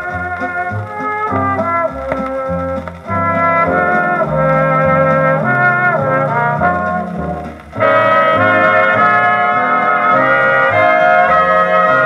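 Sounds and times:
dance orchestra with brass: 0.0 - 12.0.

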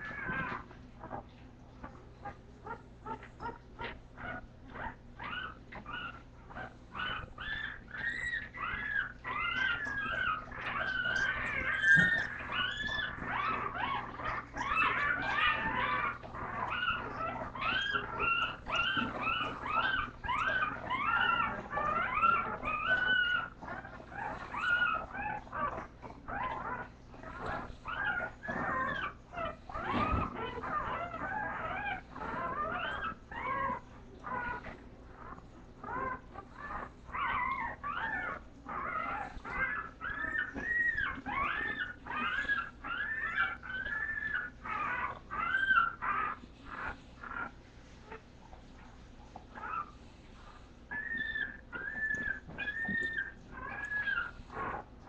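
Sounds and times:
faint steady hum: 0.0 - 55.0
puppies whimpering: 0.0 - 55.0.

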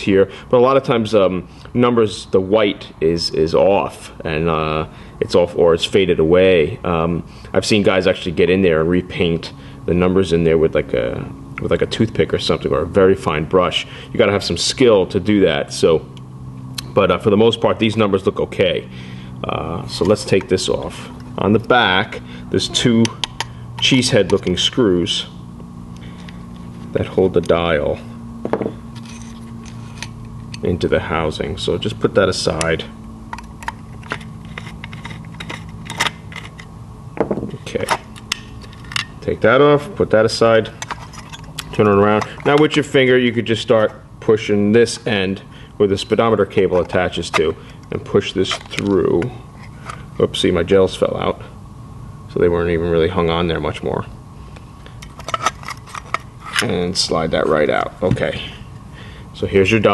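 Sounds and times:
low room hum: 0.0 - 59.9
small metal clicks and scrapes: 33.3 - 36.7, 55.0 - 56.7.

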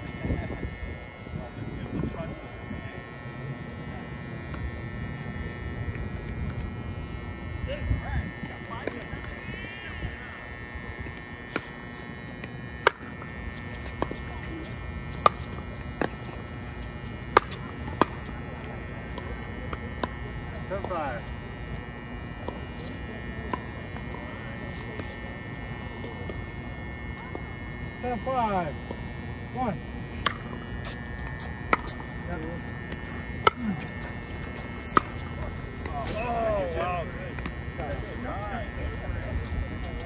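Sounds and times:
high-pitched hum: 0.0 - 40.0.

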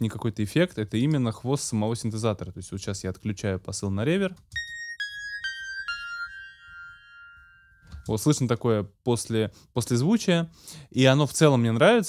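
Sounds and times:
high synthesizer note ringing: 4.6 - 8.2.

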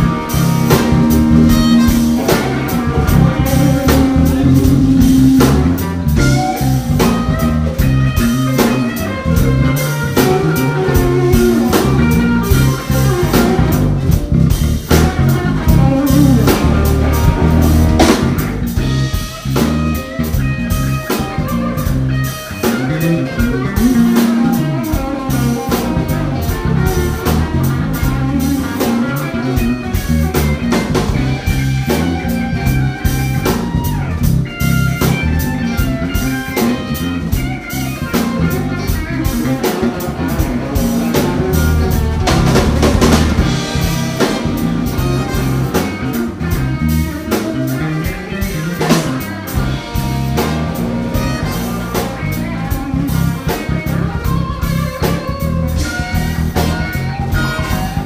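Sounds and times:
drum kit and rhythm section: 0.0 - 58.0
electric guitar solo: 0.0 - 58.0.

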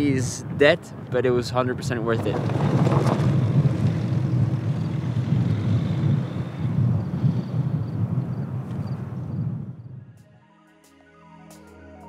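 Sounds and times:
car engine running: 2.1 - 7.7.

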